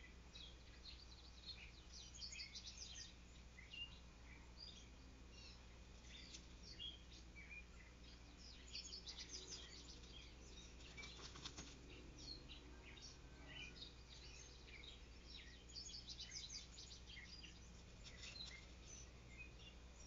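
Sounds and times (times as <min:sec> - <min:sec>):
low steady hum: 0:00.0 - 0:20.0
songbirds chirping: 0:00.0 - 0:20.0.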